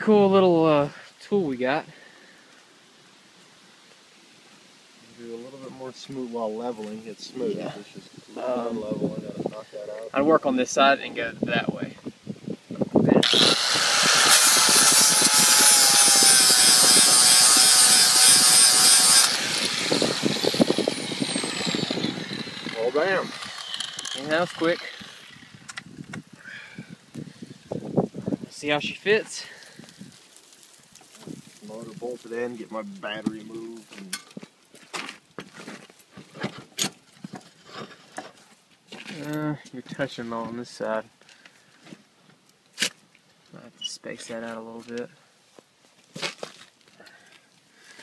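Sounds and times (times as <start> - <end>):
angle grinder grinding metal: 13.1 - 25.9
grinder winding down whine: 13.2 - 25.8
handling scuffs and rustles: 33.8 - 39.4, 44.8 - 47.0.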